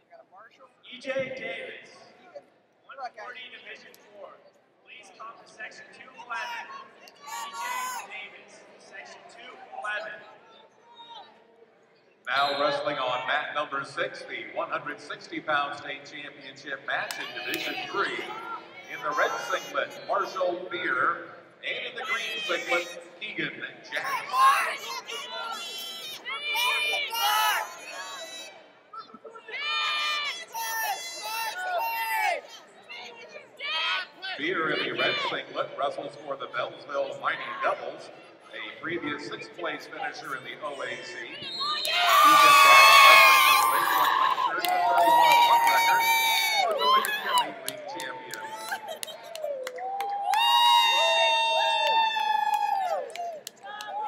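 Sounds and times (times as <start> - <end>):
crowd shouting high-pitched yells: 6.2 - 8.1, 17.1 - 20.4, 22.0 - 23.1, 23.9 - 28.7, 29.4 - 35.4, 41.3 - 54.0
scattered clapping: 46.6 - 50.6.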